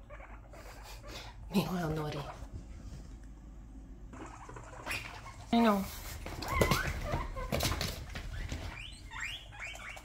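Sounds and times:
guinea pigs calling: 0.0s - 2.5s, 4.0s - 10.0s
guinea pigs moving about: 0.1s - 3.4s, 4.1s - 10.0s.

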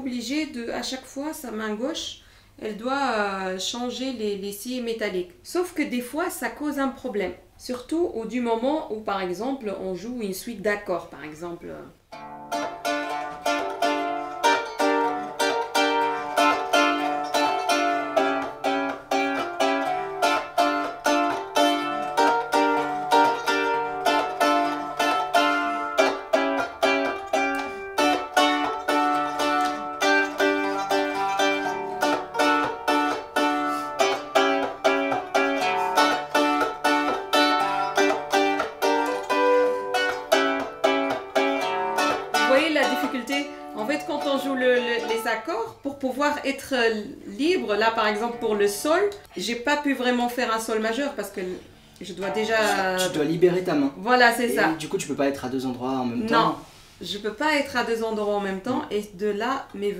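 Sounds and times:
plucked zither notes and chords: 12.1s - 45.6s.

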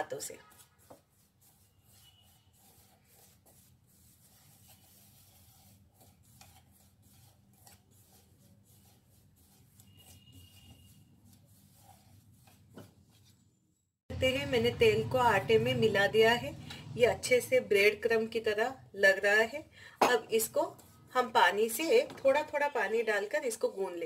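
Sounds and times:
fingers rubbing flour in a bowl: 0.0s - 13.3s.

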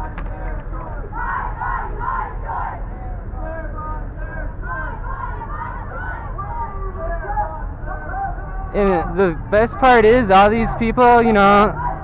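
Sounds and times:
crowd chanting slogan: 0.0s - 12.0s.

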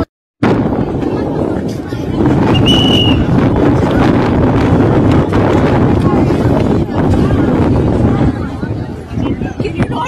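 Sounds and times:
crowd chatter: 0.0s - 10.0s
wind buffeting microphone: 0.0s - 10.0s.

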